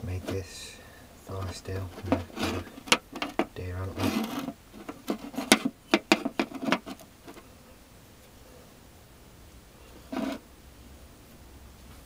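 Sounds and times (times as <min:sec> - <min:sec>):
fire steel scraping on concrete: 0:00.2 - 0:07.4, 0:10.0 - 0:10.4.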